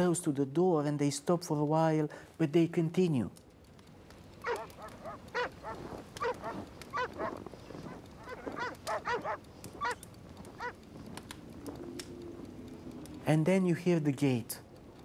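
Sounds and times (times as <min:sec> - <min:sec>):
dogs barking: 0:04.4 - 0:10.8.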